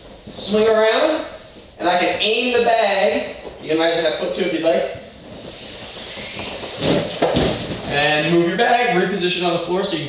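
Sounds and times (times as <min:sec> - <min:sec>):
punching bag base scraping: 0:05.2 - 0:08.4.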